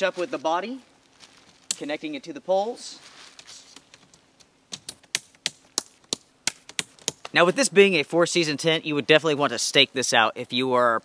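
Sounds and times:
tent fabric rustling: 0.0 - 1.7, 2.6 - 3.9.

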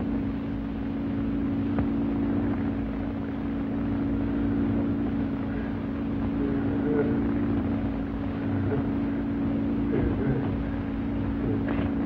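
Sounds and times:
electrical hum of apparatus: 0.0 - 12.0
low rumble: 0.0 - 12.0.

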